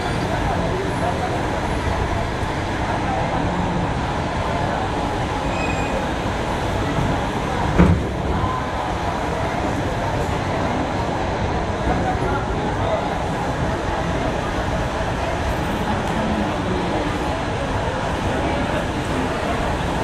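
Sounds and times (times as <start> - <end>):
crowd chatter: 0.0 - 20.0
train running rumble: 0.0 - 20.0.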